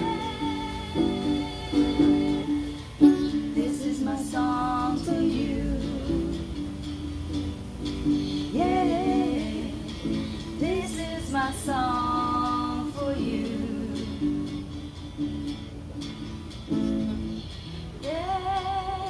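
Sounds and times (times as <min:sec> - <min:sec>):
women singing: 0:00.0 - 0:06.9, 0:08.4 - 0:14.8, 0:18.0 - 0:19.0
acoustic guitar playing slow song: 0:00.0 - 0:19.0.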